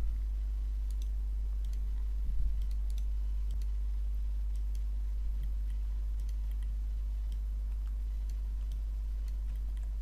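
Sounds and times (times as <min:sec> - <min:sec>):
low electrical hum: 0:00.0 - 0:10.0
computer mouse clicks: 0:00.8 - 0:03.8, 0:04.4 - 0:10.0.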